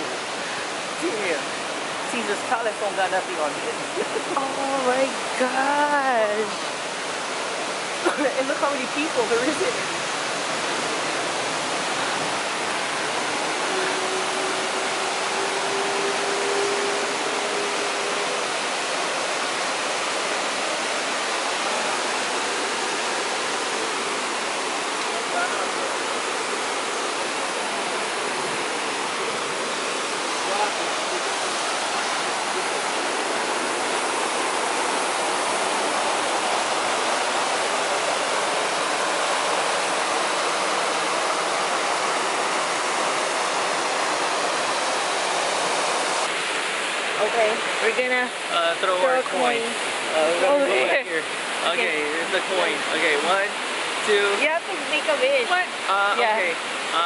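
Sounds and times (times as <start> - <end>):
fountain water cascading: 0.0 - 57.0.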